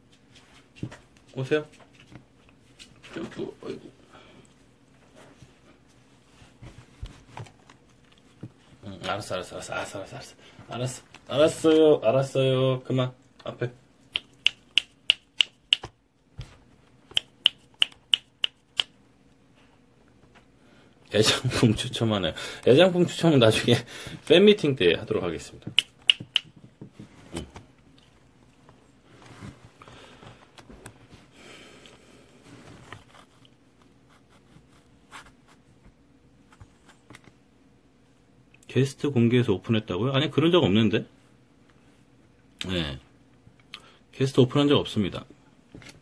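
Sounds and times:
fingers snapping: 0:14.1 - 0:15.9, 0:17.1 - 0:19.0, 0:25.8 - 0:26.5.

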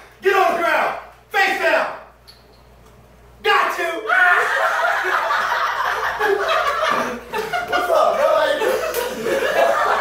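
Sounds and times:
people laughing: 0:04.2 - 0:10.0.

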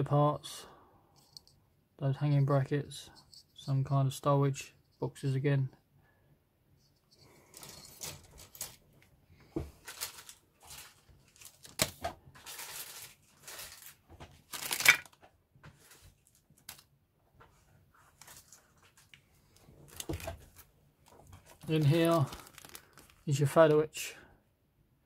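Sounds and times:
plastic bags rustling: 0:07.4 - 0:09.0, 0:09.7 - 0:15.2, 0:18.1 - 0:23.7.

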